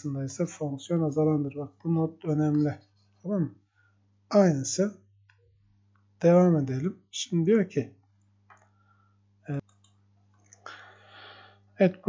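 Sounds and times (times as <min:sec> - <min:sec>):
low steady hum: 0:00.0 - 0:07.9.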